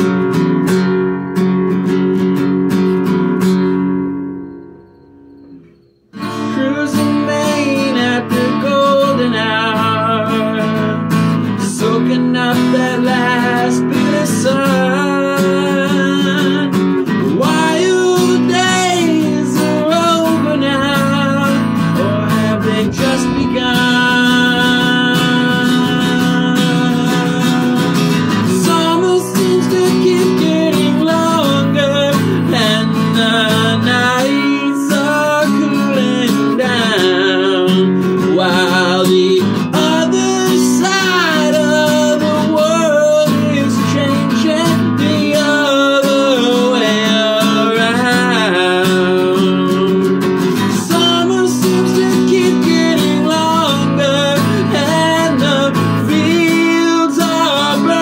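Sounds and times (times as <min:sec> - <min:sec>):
acoustic guitar strumming: 0:00.0 - 0:58.0
man singing: 0:06.2 - 0:58.0.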